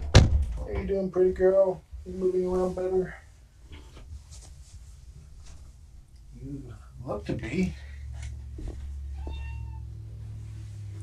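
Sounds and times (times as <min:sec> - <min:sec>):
cat meowing: 0:09.2 - 0:09.9.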